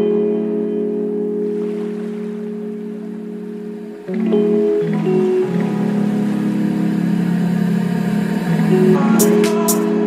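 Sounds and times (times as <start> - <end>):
sustained low chords: 0.0 - 10.0
person singing: 8.7 - 10.0.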